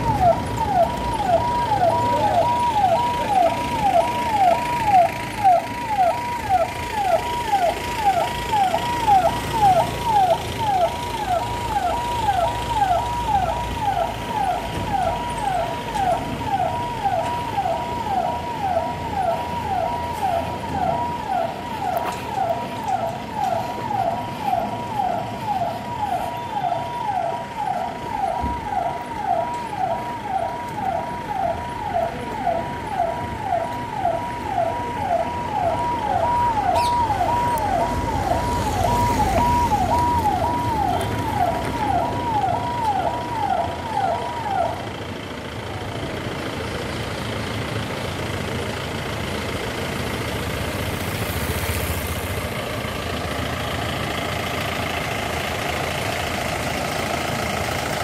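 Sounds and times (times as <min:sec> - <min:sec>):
electronic siren sweeping down: 0:00.0 - 0:44.8.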